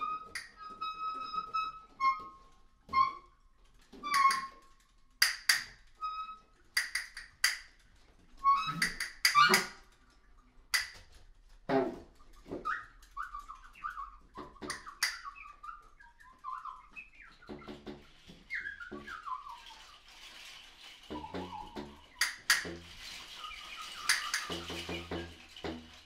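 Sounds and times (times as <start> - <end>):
sharp clicks: 5.2 - 5.8, 6.8 - 7.8, 10.7 - 11.2
chirping whistle-like high notes: 12.6 - 17.6, 18.5 - 20.0, 23.2 - 25.4.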